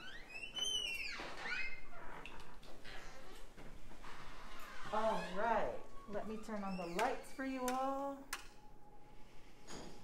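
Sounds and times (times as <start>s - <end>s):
door hinges squeaking: 0.0s - 5.6s, 6.2s - 7.7s.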